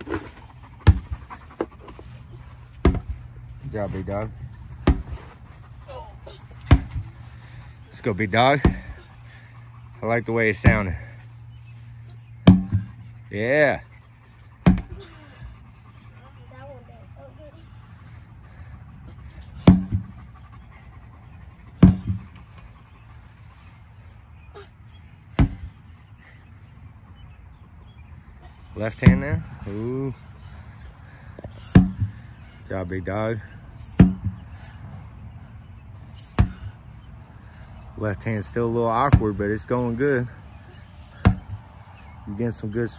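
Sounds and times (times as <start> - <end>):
sledgehammer thud on rubber tire: 2.8 - 3.2, 4.8 - 5.2, 6.6 - 7.1, 12.4 - 13.0, 14.6 - 15.0, 19.6 - 20.1, 21.8 - 22.3, 25.4 - 25.7, 31.6 - 32.2, 33.9 - 34.4, 36.2 - 36.8, 41.2 - 41.6.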